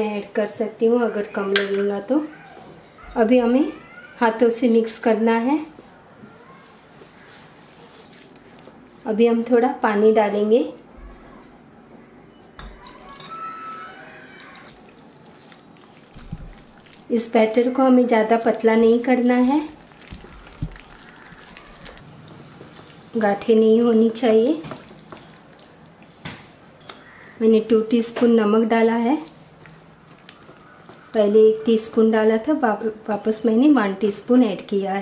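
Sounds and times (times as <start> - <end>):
hands squishing yogurt mixture: 7.0 - 9.1, 12.7 - 27.4, 28.8 - 33.3.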